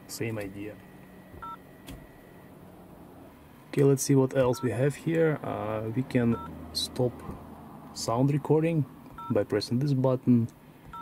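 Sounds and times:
two-tone electronic beep: 1.4s - 1.6s.

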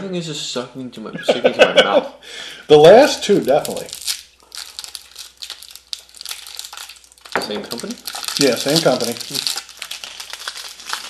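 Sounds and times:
candy wrapper crinkling: 2.8s - 11.0s.

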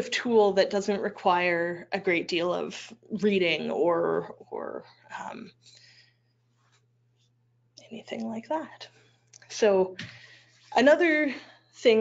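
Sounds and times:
woman talking: 0.0s - 5.6s, 7.8s - 12.0s
faint low hum: 0.0s - 12.0s.

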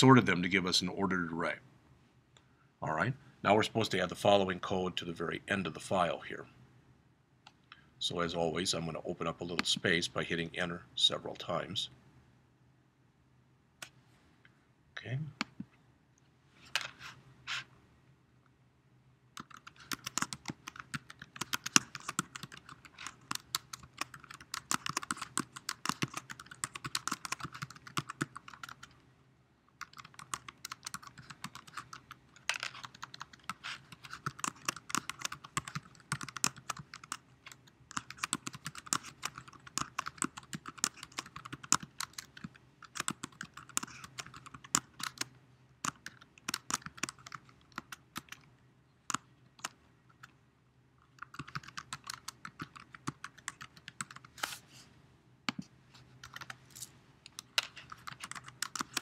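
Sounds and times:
faint steady hum: 0.0s - 59.0s
typing on a keyboard: 19.4s - 29.0s, 29.8s - 48.5s, 51.2s - 54.3s, 57.9s - 59.0s.

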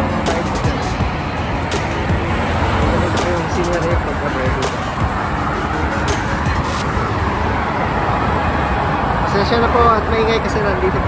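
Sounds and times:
cars passing close by: 0.0s - 11.0s
highway traffic noise: 0.0s - 11.0s.

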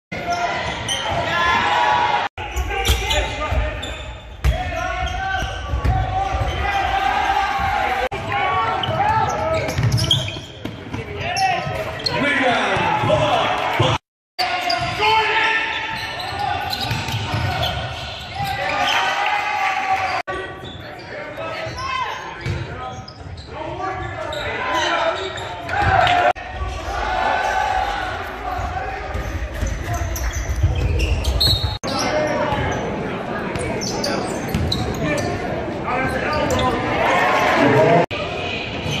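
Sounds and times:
echoing crowd and player voices: 0.1s - 39.0s
basketball bouncing on wooden court: 8.8s - 11.0s, 16.7s - 17.8s.

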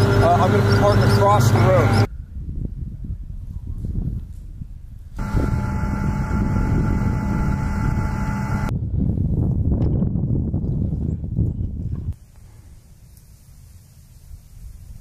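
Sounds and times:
gas-turbine engine whine: 0.0s - 2.1s, 5.2s - 8.7s
low engine rumble: 0.0s - 2.1s, 5.2s - 8.7s.

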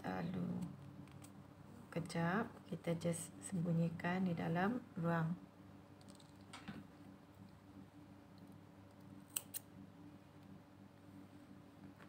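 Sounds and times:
thread snips cutting yarn: 9.3s - 9.7s.

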